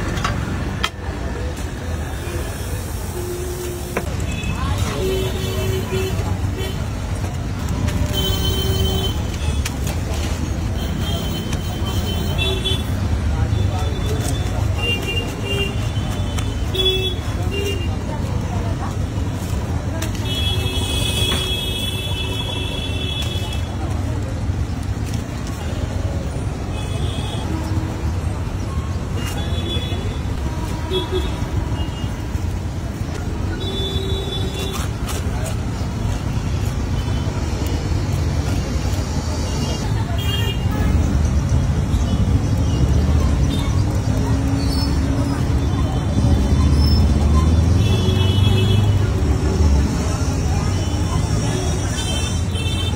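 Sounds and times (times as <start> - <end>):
city traffic rumble: 0.0 - 52.9.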